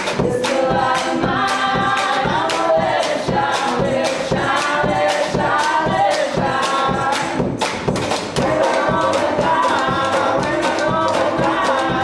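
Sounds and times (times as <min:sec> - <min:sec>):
quick drum beat: 0:00.0 - 0:12.0
voices singing together: 0:00.0 - 0:12.0
strummed acoustic guitar: 0:07.4 - 0:12.0.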